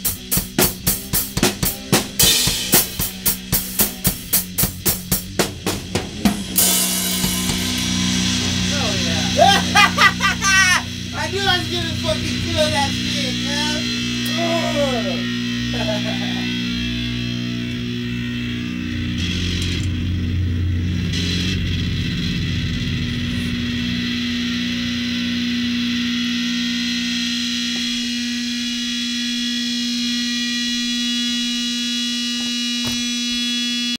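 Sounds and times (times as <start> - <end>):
guitar amplifier droning tone: 0.0 - 33.9
low rumble: 5.8 - 14.3.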